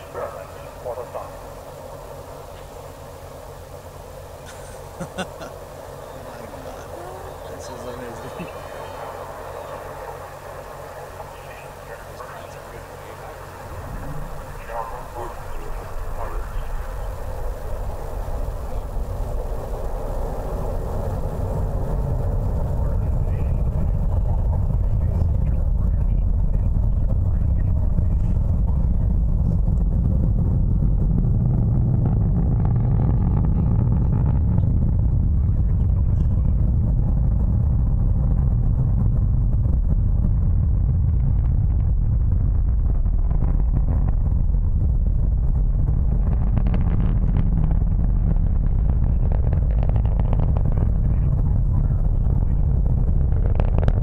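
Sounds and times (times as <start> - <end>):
distant rocket engine rumble: 0.0 - 54.0.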